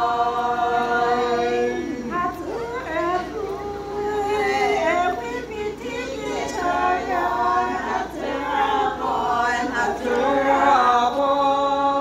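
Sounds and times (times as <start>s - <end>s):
women singing unaccompanied: 0.0s - 12.0s.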